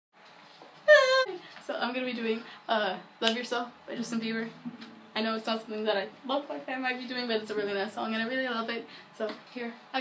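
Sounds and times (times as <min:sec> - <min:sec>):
woman's high-pitched exclamation: 0:00.9 - 0:01.4
woman speaking: 0:00.9 - 0:10.0.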